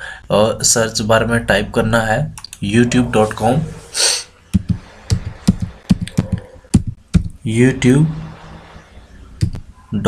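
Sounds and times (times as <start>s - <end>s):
keyboard typing: 4.5s - 7.4s.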